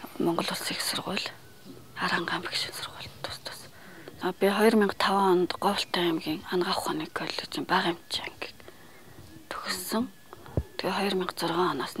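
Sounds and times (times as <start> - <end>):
woman speaking: 0.0 - 1.4, 2.0 - 8.5, 9.5 - 10.2, 10.8 - 12.0.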